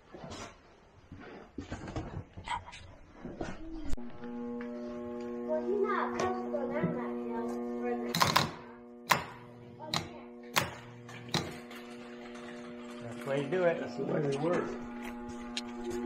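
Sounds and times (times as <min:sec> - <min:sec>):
starter motor whining: 0:04.0 - 0:16.0.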